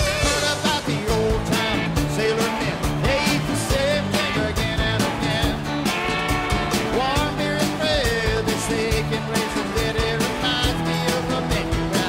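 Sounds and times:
live rock band playing: 0.0s - 12.0s
steady drum beat: 0.0s - 12.0s.

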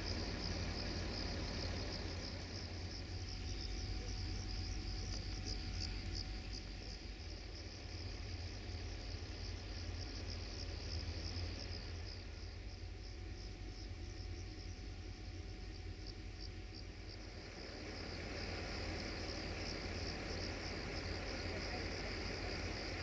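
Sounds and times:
crickets chirping: 0.0s - 23.0s
low steady rumble: 0.0s - 23.0s.

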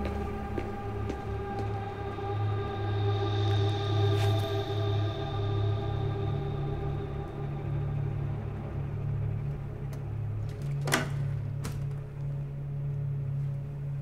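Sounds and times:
low droning music: 0.0s - 14.0s.

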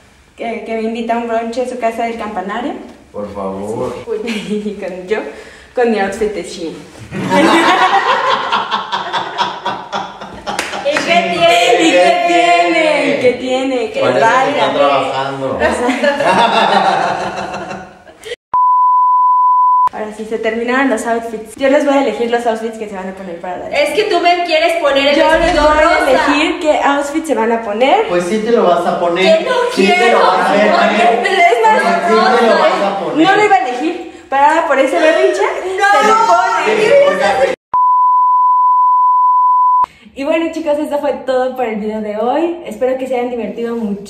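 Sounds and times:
electronic beep: 18.6s - 19.9s, 37.8s - 39.9s.

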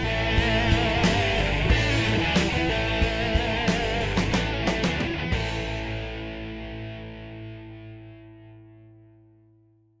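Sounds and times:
distorted electric guitar chord: 0.0s - 9.6s.

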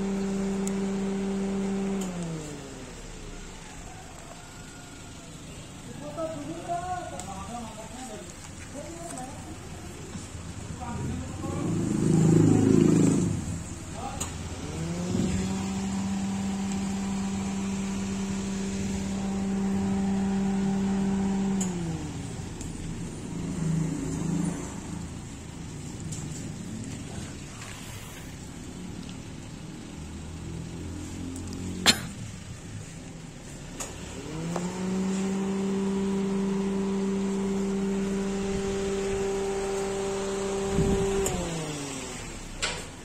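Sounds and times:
motor humming: 0.0s - 3.6s, 11.0s - 28.8s, 32.7s - 42.8s.

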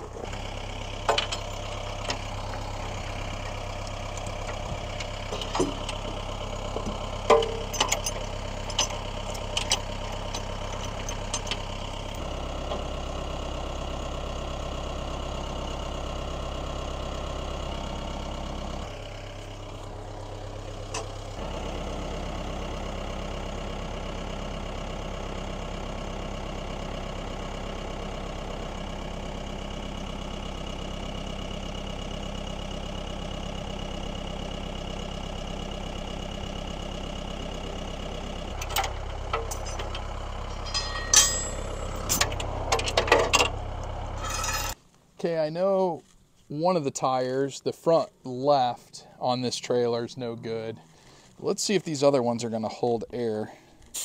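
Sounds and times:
tractor engine idling: 0.0s - 54.0s
sharp metal clanks: 7.3s - 11.6s, 38.6s - 43.6s, 44.2s - 44.8s.

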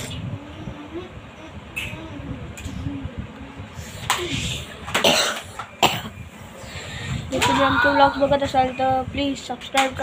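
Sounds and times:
boy coughing: 5.0s - 6.2s.

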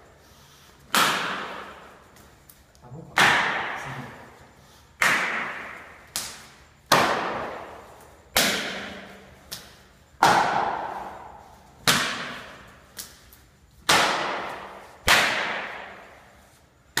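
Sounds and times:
sharp slaps on body: 0.8s - 2.3s, 3.1s - 4.2s, 5.0s - 17.0s.

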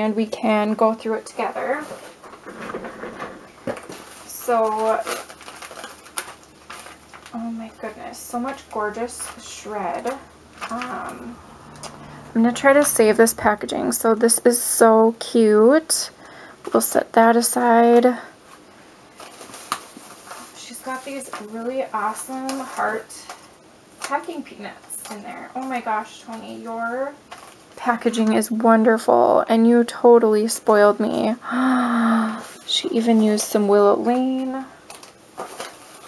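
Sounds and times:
paper packaging rustling: 1.6s - 12.9s, 18.4s - 24.2s, 26.7s - 28.0s, 33.1s - 36.0s
paper rustling: 1.7s - 11.9s.

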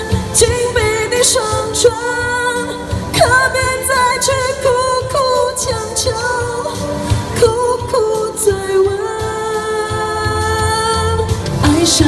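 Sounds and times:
pop backing track: 0.0s - 12.0s
woman singing through a microphone: 0.0s - 12.0s.

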